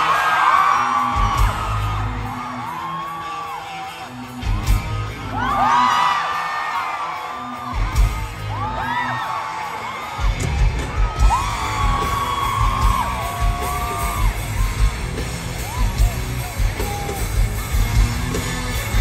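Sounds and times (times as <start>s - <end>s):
live rock band playing: 0.0s - 6.2s, 7.4s - 19.0s.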